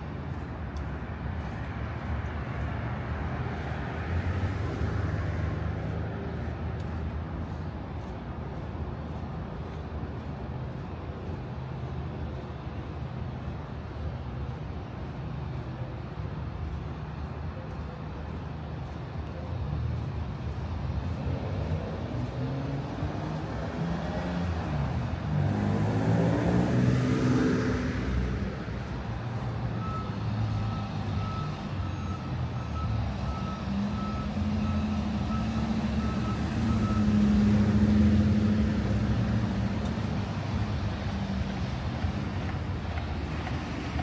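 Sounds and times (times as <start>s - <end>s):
vehicle driving past: 0.0s - 17.4s, 18.3s - 44.0s
running engines: 0.0s - 44.0s
reversing alarm beeping: 29.2s - 37.6s.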